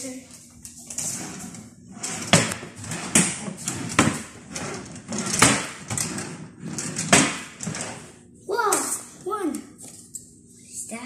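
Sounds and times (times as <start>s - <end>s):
drawers sliding scrapes: 0.9s - 8.2s.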